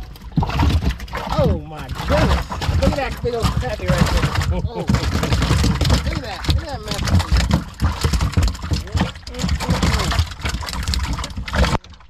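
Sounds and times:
water spraying onto fish: 0:00.0 - 0:11.8
low steady rumble: 0:00.0 - 0:12.0.

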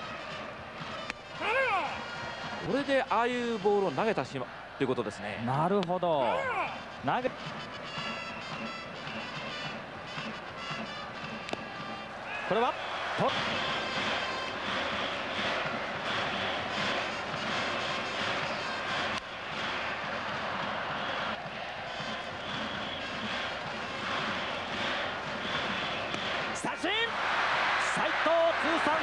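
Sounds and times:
stadium crowd cheering: 0:00.0 - 0:29.0.

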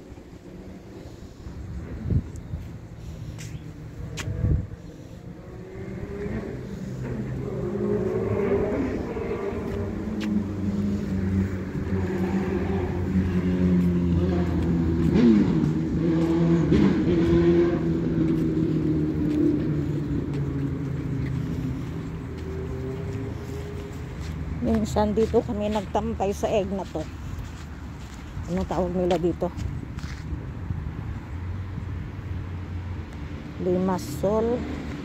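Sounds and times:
vehicle engine running and revving: 0:00.0 - 0:35.0.

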